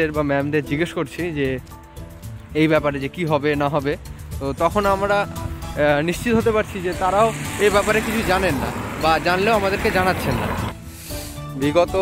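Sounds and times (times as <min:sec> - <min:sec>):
man talking: 0:02.6 - 0:10.6
passing car: 0:04.3 - 0:10.9.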